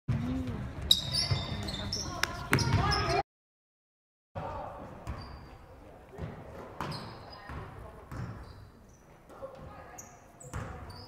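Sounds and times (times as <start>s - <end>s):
players and spectators voices: 0.1s - 3.2s, 4.4s - 11.0s
sneaker squeaks: 0.8s - 3.2s, 5.0s - 5.7s, 6.6s - 11.0s
basketball bouncing on wooden floor: 6.2s - 8.4s, 10.5s - 10.8s.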